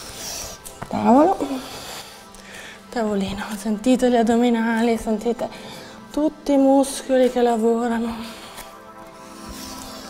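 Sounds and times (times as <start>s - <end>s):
soft background music: 0.0s - 10.0s
woman speaking: 0.9s - 1.6s, 2.9s - 5.5s, 6.1s - 8.4s.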